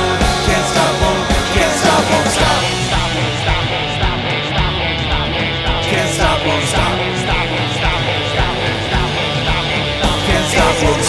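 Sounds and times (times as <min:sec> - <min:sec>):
drums with steady kick: 0:00.0 - 0:11.0
electric guitar riff: 0:00.0 - 0:11.0.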